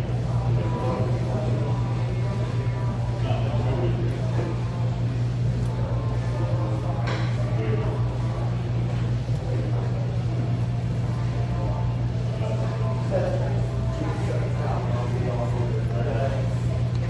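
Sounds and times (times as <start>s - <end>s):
faint background voices: 0.0s - 17.0s
steady low hum: 0.0s - 17.0s.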